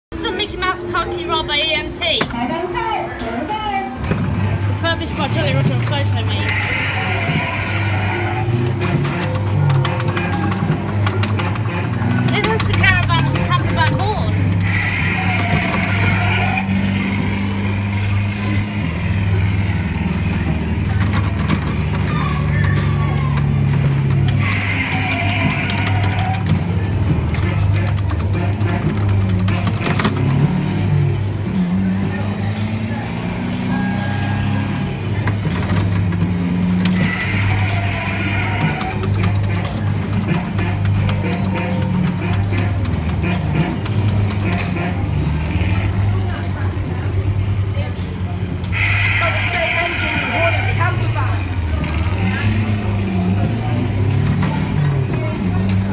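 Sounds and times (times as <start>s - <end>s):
kiddie ride music and voice: 0.1s - 30.4s, 36.8s - 55.9s.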